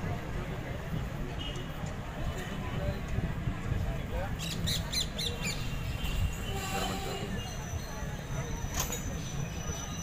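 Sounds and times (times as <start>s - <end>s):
train rumbling: 6.1s - 10.0s.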